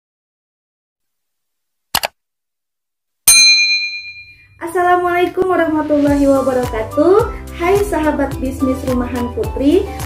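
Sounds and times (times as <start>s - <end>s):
bell-like ding strike: 3.3s - 4.6s.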